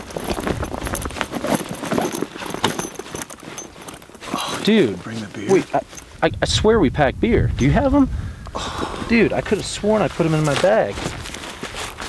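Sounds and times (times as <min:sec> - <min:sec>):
buckles and straps clicking: 0:00.0 - 0:06.2, 0:08.4 - 0:12.0
backpack rustling: 0:00.0 - 0:06.3, 0:08.6 - 0:12.0.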